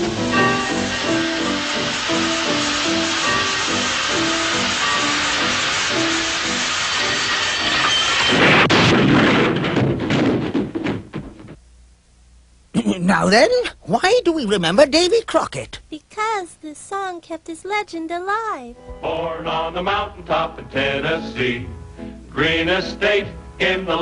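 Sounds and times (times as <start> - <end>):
orchestral music: 0.0 - 8.2.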